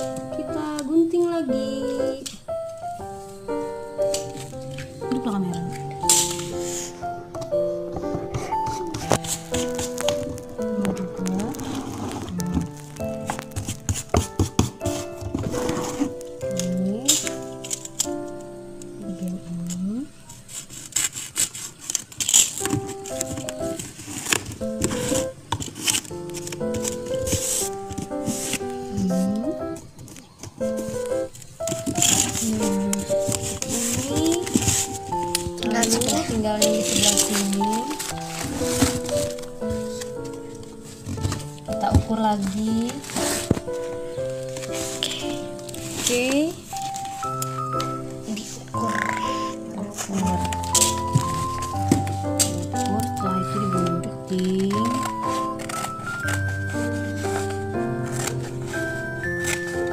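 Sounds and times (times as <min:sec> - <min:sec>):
background music: 0:00.0 - 0:20.3, 0:22.2 - 0:59.9
vinyl sticker crinkling and clicking: 0:04.0 - 0:06.7, 0:07.3 - 0:59.9.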